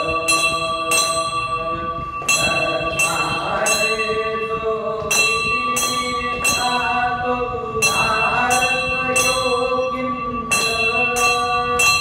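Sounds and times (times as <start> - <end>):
brass bell ringing: 0.0 - 12.0.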